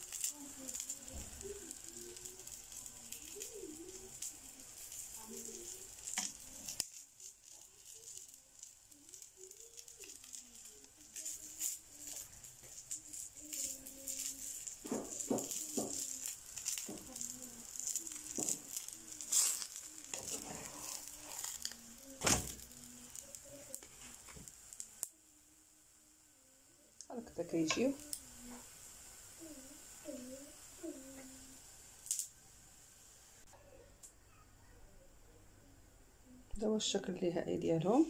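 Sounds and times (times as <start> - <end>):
crackles and pops: 0.0 - 26.2, 26.8 - 34.4
food sizzling in frying pan: 0.0 - 33.5.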